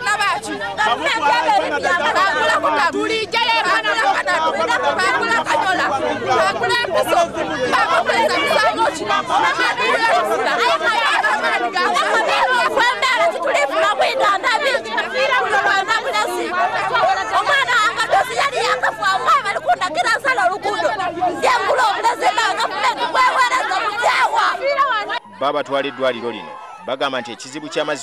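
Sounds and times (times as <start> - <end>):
woman speaking loudly: 0.0 - 25.2
voices talking over one another: 0.0 - 28.0.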